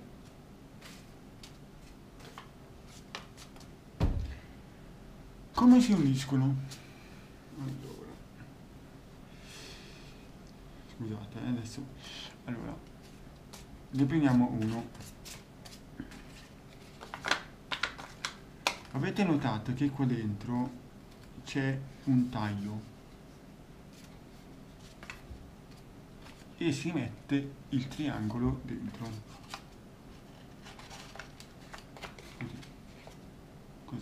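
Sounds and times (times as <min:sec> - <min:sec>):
paper rustling: 0:13.0 - 0:18.4, 0:23.9 - 0:26.5, 0:28.2 - 0:33.2
paper crinkles and taps: 0:16.1 - 0:19.0
paper crackles: 0:28.8 - 0:33.2.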